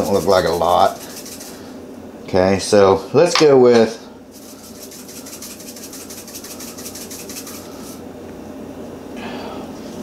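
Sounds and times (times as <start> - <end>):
pepper flakes rattling in shaker: 0.0 - 1.7, 4.3 - 8.0.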